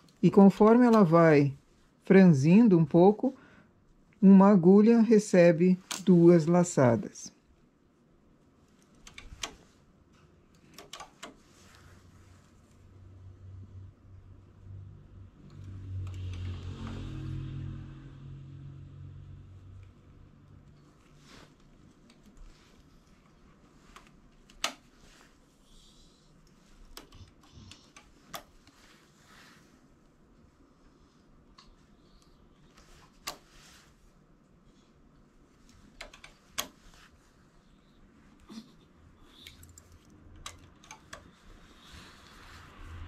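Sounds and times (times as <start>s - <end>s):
knitting machine needles clicking: 8.8s - 9.8s, 10.5s - 11.8s, 23.1s - 25.1s, 26.4s - 28.8s, 35.6s - 36.9s, 39.3s - 41.7s.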